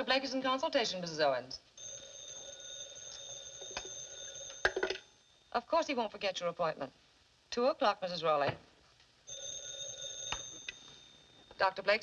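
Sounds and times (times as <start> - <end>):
desk telephone bell ringing: 1.8 - 5.5, 9.3 - 12.0.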